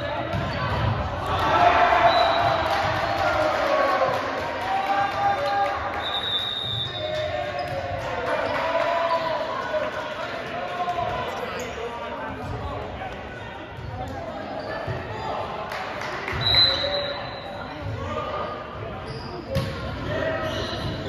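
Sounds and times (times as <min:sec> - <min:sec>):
voices echoing in gym: 0:00.0 - 0:21.0
high squeak or whistle: 0:16.4 - 0:17.6.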